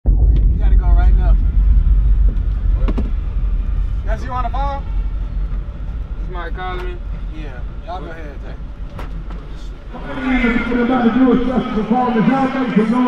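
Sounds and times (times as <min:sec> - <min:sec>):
low rumble inside van cabin: 0:00.0 - 0:12.7
people's voices: 0:00.2 - 0:13.0.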